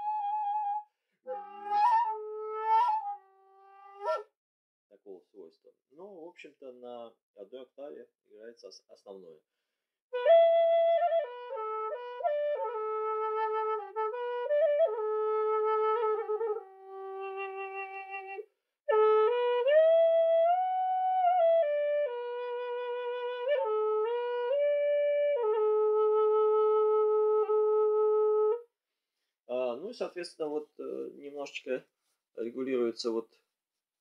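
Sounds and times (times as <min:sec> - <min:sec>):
flute playing slow melody: 0:00.0 - 0:04.2, 0:10.2 - 0:28.7.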